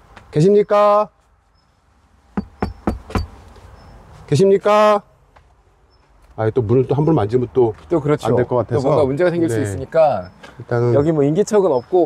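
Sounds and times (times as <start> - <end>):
hand knocking on steel door: 2.4 - 3.3.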